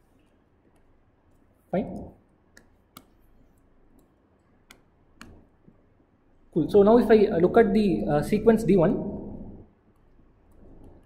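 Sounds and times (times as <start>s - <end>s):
stylus tapping on tablet screen: 2.5s - 3.3s, 4.0s - 5.8s.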